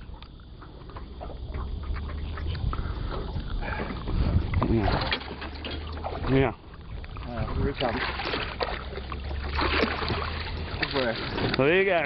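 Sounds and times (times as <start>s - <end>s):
wind rumble on microphone: 0.0s - 12.0s
fish splashing in water: 1.0s - 11.7s.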